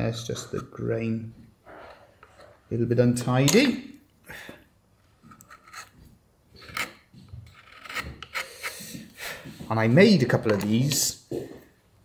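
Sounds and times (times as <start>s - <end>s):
chisel scraping wood: 5.3s - 6.0s, 6.6s - 9.1s.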